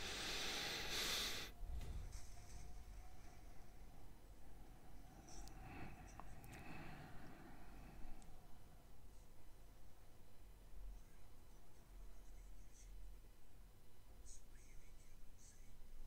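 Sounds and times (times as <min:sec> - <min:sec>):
soft exhale: 0:00.0 - 0:02.0
low steady hum: 0:00.0 - 0:16.0.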